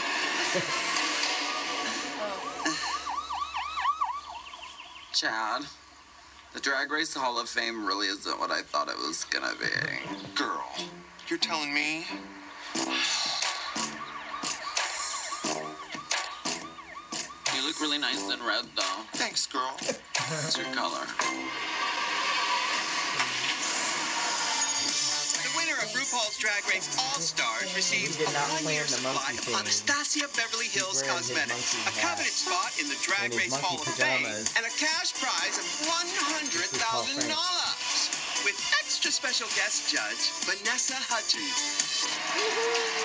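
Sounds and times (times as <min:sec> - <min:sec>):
rushing noise from television: 0:00.0 - 0:04.2, 0:05.2 - 0:43.0
siren-like warbling tone: 0:12.8 - 0:18.4.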